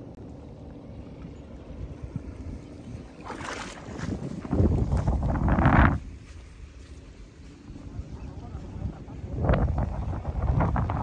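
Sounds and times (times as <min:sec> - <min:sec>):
wind rumbling on microphone: 0:00.0 - 0:11.0
water lapping at sand: 0:00.3 - 0:09.2.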